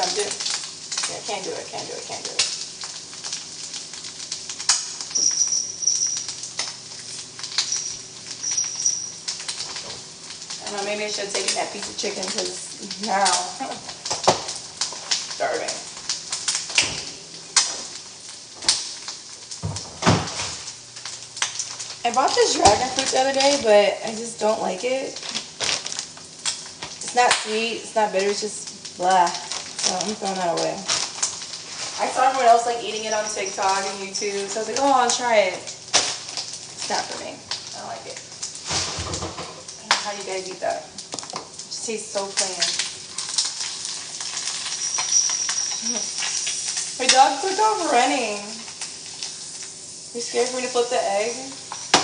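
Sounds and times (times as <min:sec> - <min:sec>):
household knocks and clatter: 0:19.6 - 0:20.6, 0:38.7 - 0:39.6.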